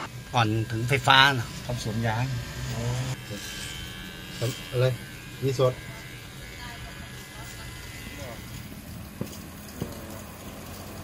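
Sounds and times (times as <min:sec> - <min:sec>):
electric hair clipper buzzing: 0:00.0 - 0:11.0.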